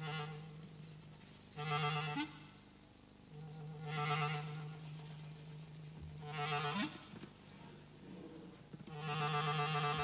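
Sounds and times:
clarinet sustained low note: 0.0 - 0.7, 1.5 - 2.5, 3.4 - 5.0, 6.2 - 7.1, 8.9 - 10.0.

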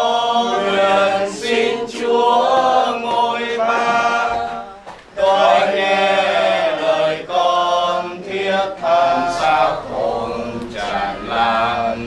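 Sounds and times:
group singing a hymn in unison: 0.0 - 12.0.

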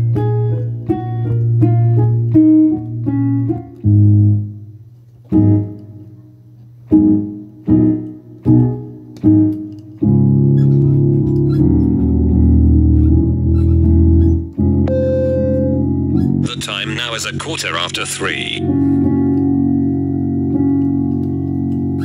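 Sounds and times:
piano playing: 0.0 - 4.6, 6.9 - 22.0.

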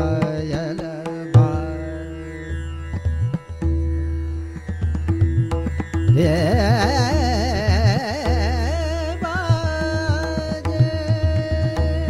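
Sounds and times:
person singing: 0.0 - 2.5, 6.2 - 12.0
tabla playing: 0.0 - 12.0
tanpura drone: 0.0 - 12.0.

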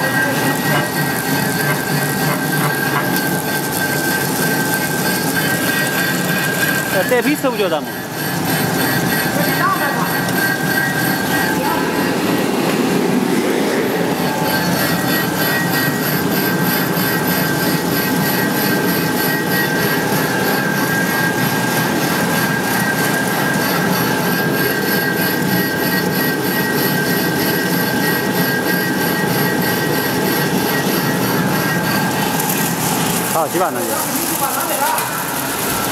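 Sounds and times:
machine running with high whine: 0.0 - 35.9.

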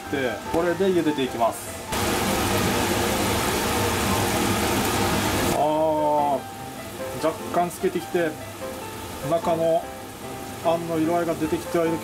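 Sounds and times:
water boiling in a pan: 0.0 - 12.0.

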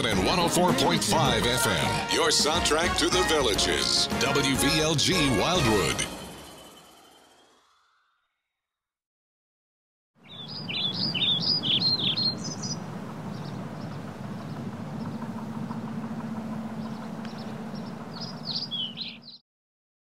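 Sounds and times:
birds chirping and twittering: 10.2 - 19.4
steady low hum: 11.4 - 19.3.

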